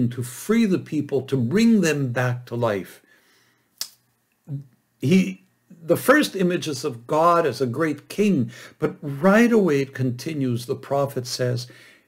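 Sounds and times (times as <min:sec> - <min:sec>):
sharp click: 0:03.8 - 0:04.1.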